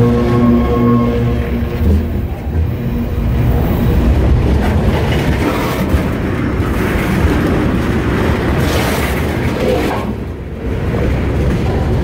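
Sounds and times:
train wheels rumbling on track: 0:00.0 - 0:12.0.

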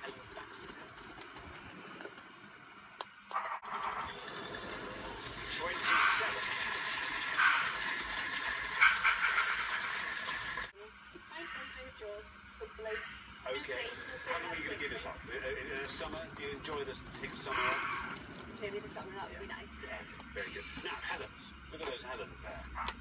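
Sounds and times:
model train motor whirring: 0:00.0 - 0:10.7, 0:11.3 - 0:21.2
television voices: 0:00.0 - 0:23.0.

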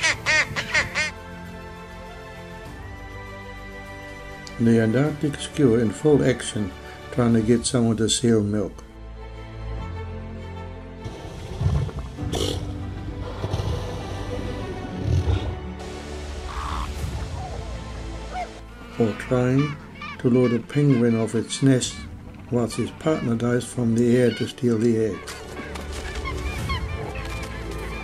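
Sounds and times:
skua harsh calls: 0:00.0 - 0:01.2, 0:16.4 - 0:28.0
background music: 0:00.0 - 0:28.0
seal guttural call: 0:18.3 - 0:23.3.

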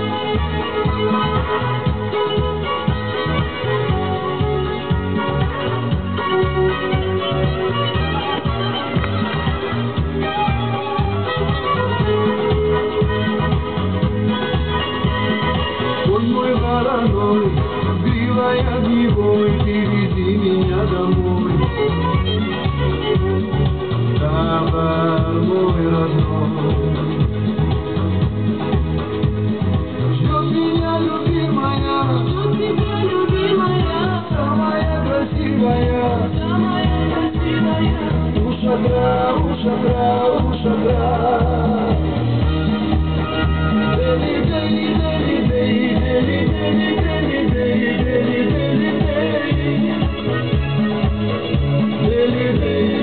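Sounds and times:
music with steady beat: 0:00.0 - 0:53.0.

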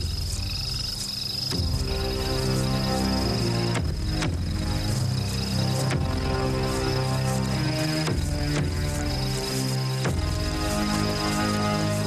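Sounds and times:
frogs calling: 0:00.0 - 0:12.0
soft background music: 0:00.0 - 0:12.0.

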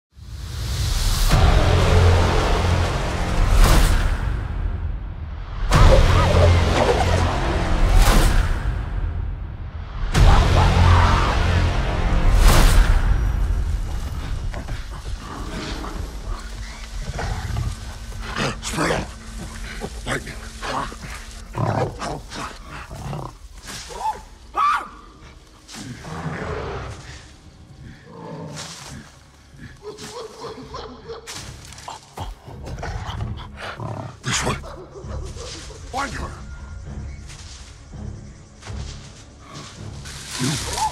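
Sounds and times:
rustling through tall grass: 0:14.0 - 0:24.5, 0:28.4 - 0:30.6, 0:37.2 - 0:40.9.

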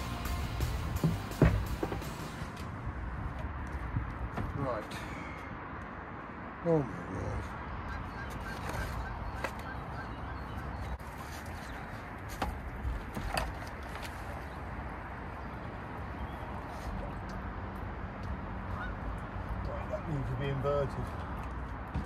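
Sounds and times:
outdoor background noise: 0:00.0 - 0:22.0
pump knocks and clanks: 0:00.8 - 0:02.3.

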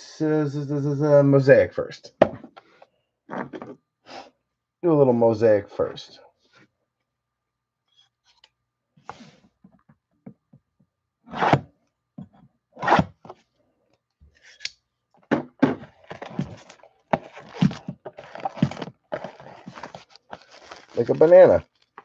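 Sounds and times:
box knocking: 0:15.3 - 0:19.4
plastic wrap crinkling and tearing: 0:16.0 - 0:22.0.

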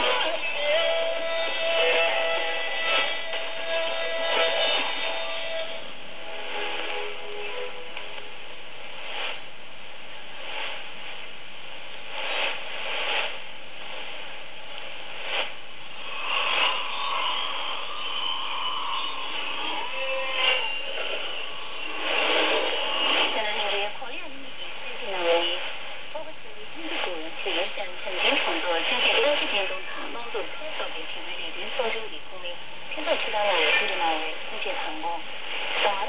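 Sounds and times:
muffled radio music: 0:00.0 - 0:36.0
radio static hiss: 0:00.0 - 0:36.0.

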